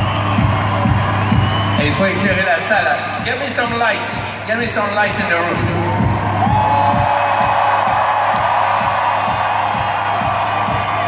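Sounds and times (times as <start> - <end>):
crowd cheering and whooping: 0.0 - 2.6, 5.5 - 11.0
electronic dance music: 0.0 - 11.0.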